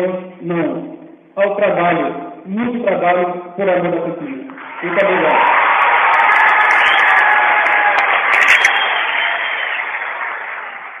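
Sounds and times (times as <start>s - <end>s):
audience applause: 4.6s - 11.0s.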